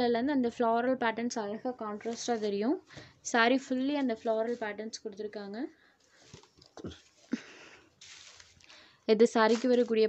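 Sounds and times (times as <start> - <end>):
silk cloth rustling: 8.0 - 8.6.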